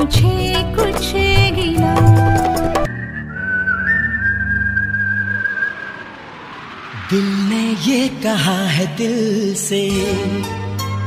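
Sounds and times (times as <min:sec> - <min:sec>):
high whistle-like held note: 0:02.1 - 0:07.4.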